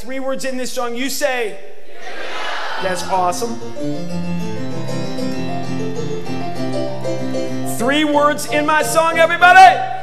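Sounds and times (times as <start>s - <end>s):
keyboard playing chords and melody: 3.1s - 10.0s.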